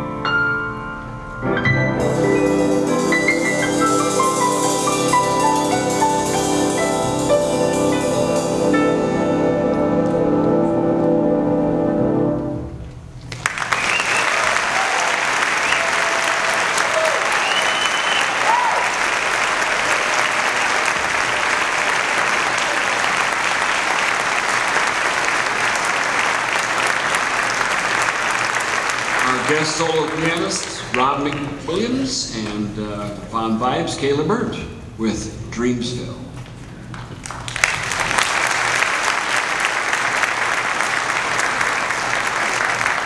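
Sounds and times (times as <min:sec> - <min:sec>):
big band chord with piano: 0:00.0 - 0:12.8
audience applause: 0:13.3 - 0:31.6, 0:36.9 - 0:43.0.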